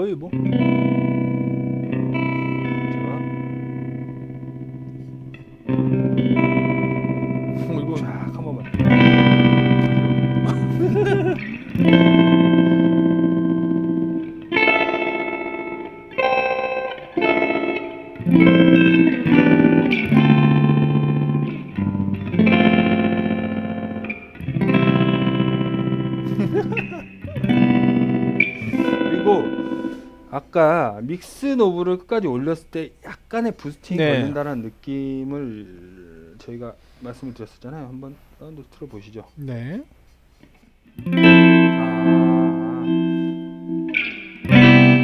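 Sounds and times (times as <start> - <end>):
electric guitar chords with tremolo: 0.3 - 30.3, 40.9 - 45.0.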